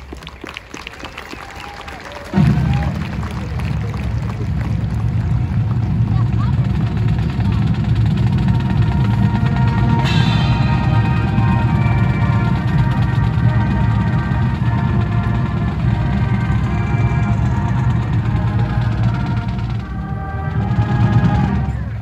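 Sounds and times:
marching band playing: 1.2s - 22.0s
drums pulsing: 1.6s - 22.0s
brass held chords: 2.4s - 22.0s.

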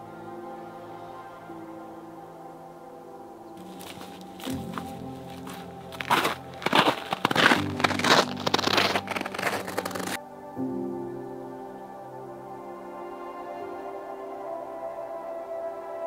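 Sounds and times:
soft ambient music: 0.0s - 16.0s
footsteps crunching through dry leaves: 3.6s - 10.2s.

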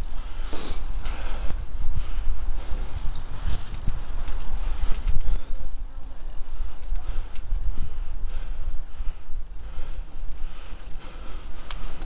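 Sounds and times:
bicycle knocking and rattling: 0.0s - 12.0s
wind rumble on microphone: 0.0s - 12.0s.

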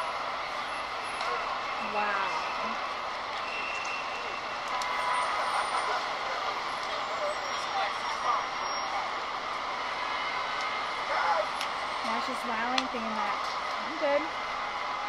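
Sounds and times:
faint voices: 0.0s - 15.0s.

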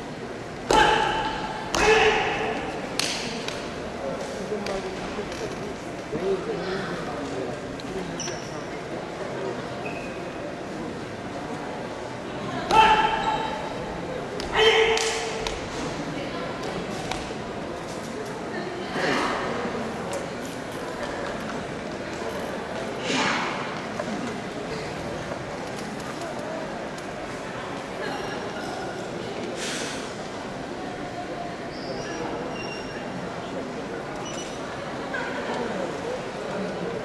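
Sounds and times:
murmur of sports hall: 0.0s - 37.0s
sharp shouts echoing in hall: 0.6s - 3.4s, 12.5s - 15.6s.

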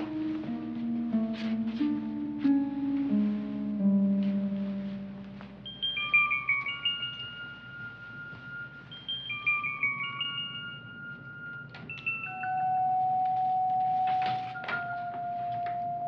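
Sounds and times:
held low note: 0.0s - 10.4s
bell-like mallet notes: 0.0s - 16.0s.

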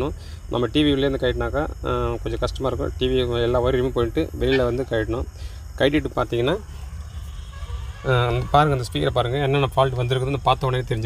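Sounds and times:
steady low hum: 0.0s - 11.0s
person talking: 0.6s - 6.6s.

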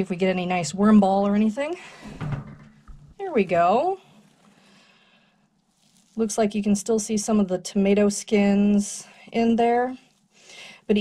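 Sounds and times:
hands rustling moist bedding: 5.6s - 7.4s.

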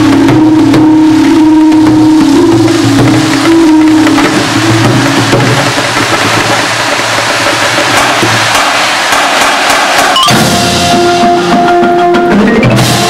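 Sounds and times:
low sustained note: 0.0s - 7.7s
drums and cymbals: 0.0s - 13.0s
mallet keyboards: 0.0s - 13.0s.

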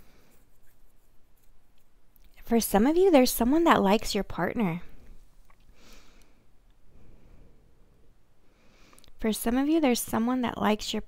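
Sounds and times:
rustling and handling noises: 0.0s - 2.4s.

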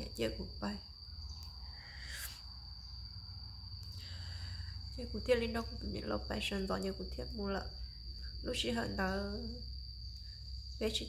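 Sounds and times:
high-pitched insect buzz: 0.0s - 11.0s.

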